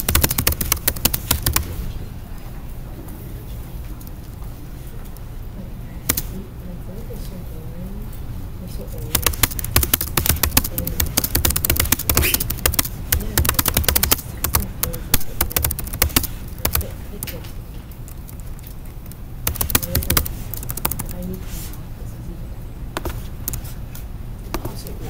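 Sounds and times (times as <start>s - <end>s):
laptop keyboard typing: 0.0s - 1.8s, 9.0s - 21.4s, 23.0s - 23.8s.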